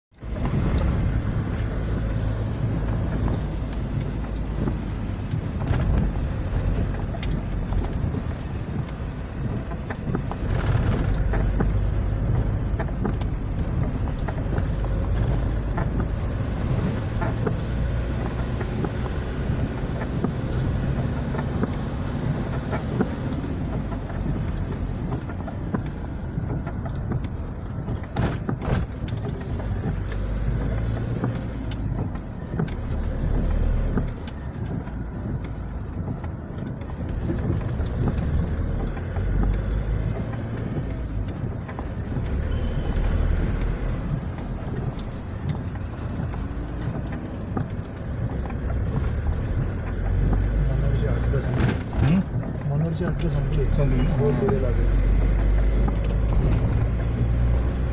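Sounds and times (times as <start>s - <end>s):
vehicle engine and road rumble: 0.0s - 57.9s.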